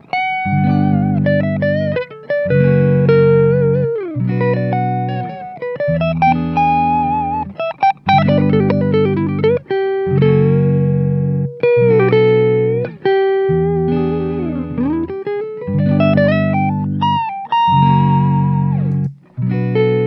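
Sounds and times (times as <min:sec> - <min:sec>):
electric guitar lead line: 0:00.0 - 0:20.0
looped electric guitar chords: 0:00.0 - 0:20.0.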